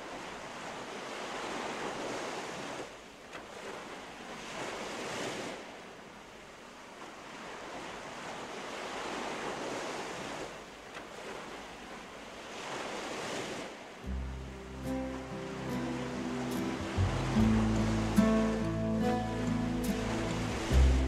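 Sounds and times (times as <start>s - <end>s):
sea surf washing in: 0.0s - 6.0s, 7.2s - 21.0s.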